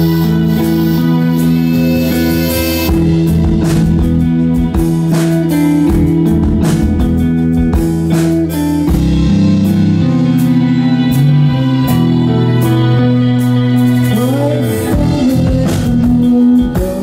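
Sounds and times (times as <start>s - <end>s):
electric rock band playing: 0.0s - 17.0s
drum and cymbal hits: 1.3s - 12.8s, 13.4s - 17.0s.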